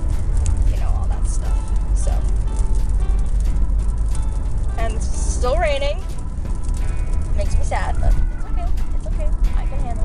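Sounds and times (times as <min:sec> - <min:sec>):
car rumbling from inside: 0:00.0 - 0:10.0
music playing: 0:00.0 - 0:10.0.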